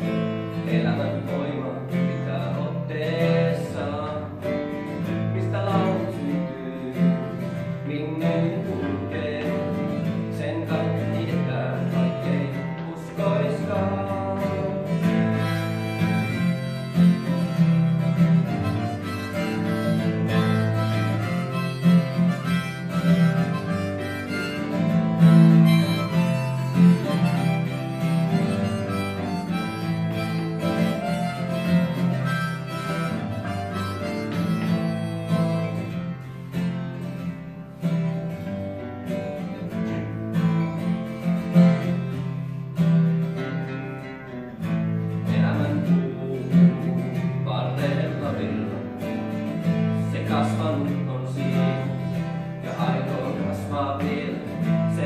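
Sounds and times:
acoustic guitar strumming: 0.0 - 55.0
harmonica melody: 0.0 - 55.0.

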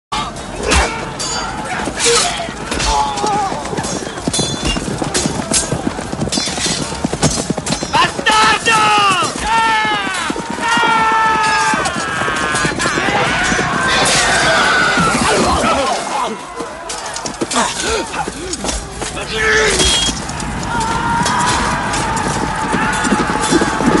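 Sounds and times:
blades clashing: 0.2 - 24.0
horse hooves clattering: 0.2 - 24.0
men shouting: 8.0 - 20.0, 20.6 - 24.0.

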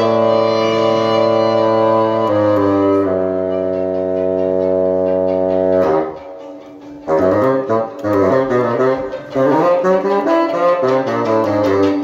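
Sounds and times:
violin low note: 0.0 - 11.8
bassoon low note: 0.0 - 12.0.

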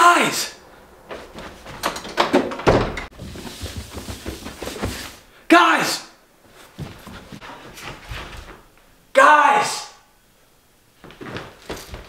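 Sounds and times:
footsteps on carpeted stairs: 1.1 - 5.3, 6.4 - 8.8, 11.0 - 12.0
wooden door thunk: 1.8 - 3.1.

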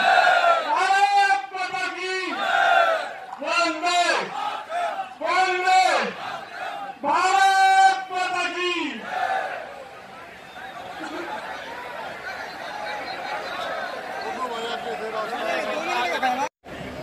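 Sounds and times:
man shouting over loudspeaker: 0.0 - 2.7, 3.4 - 9.1
crowd: 0.0 - 17.0.

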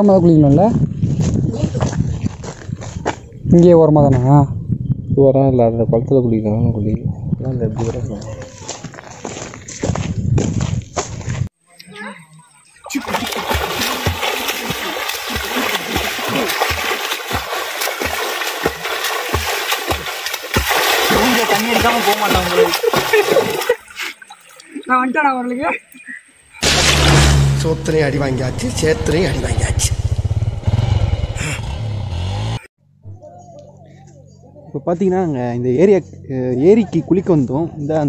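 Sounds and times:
swimming strokes splashing water: 12.8 - 25.0
motorcycle engine running: 26.6 - 33.0.

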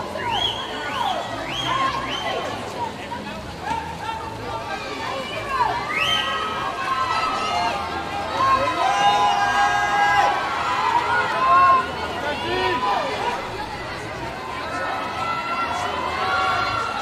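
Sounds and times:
people shouting and cheering: 3.6 - 17.0.

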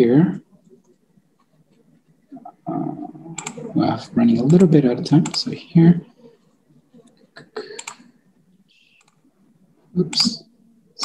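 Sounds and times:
man saying uh: 2.4 - 3.2, 10.0 - 10.4.

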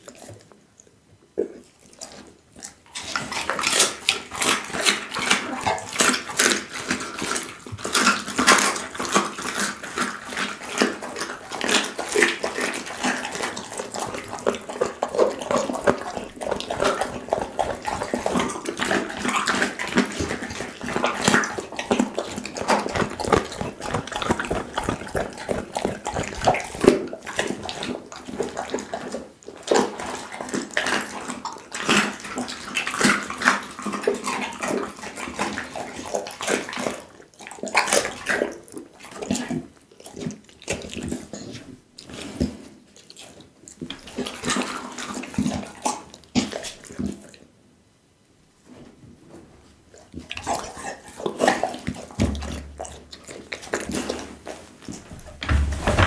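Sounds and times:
dog chewing and crunching: 0.0 - 47.5, 49.8 - 56.0.

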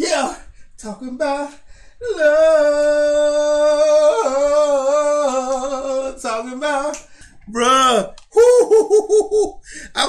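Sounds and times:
man laughing: 8.4 - 9.6.

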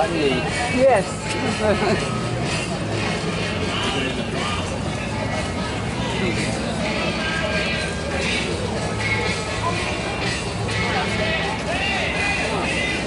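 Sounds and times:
faint music: 0.0 - 13.0
people talking: 0.0 - 13.0.

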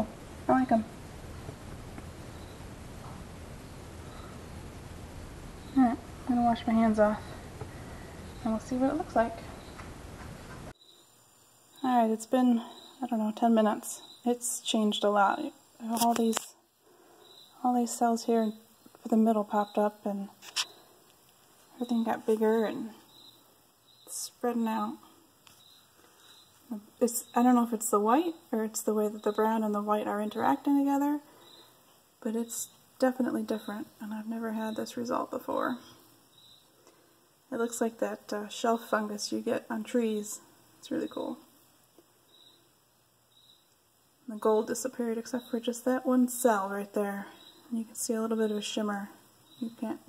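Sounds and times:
woman's voice: 0.0 - 0.9, 5.8 - 7.4, 8.4 - 9.5, 11.8 - 16.6, 17.6 - 20.4, 21.7 - 23.0, 24.1 - 25.2, 26.7 - 31.3, 32.2 - 36.0, 37.5 - 41.5, 44.2 - 50.0
low hum: 0.0 - 11.1
faint high chirps: 21.8 - 27.5, 40.9 - 43.8.

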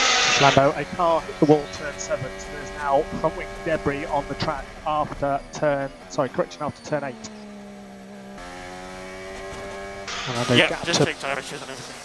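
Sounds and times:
racing car engine droning: 0.0 - 12.0.

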